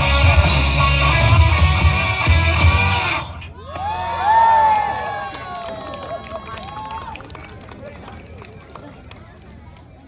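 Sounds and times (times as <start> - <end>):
crowd calling out and cheering: 0.0 - 10.0.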